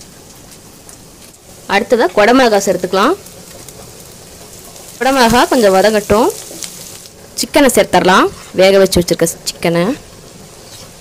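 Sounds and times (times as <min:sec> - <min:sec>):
vegetables sizzling in oil: 0:00.0 - 0:11.0.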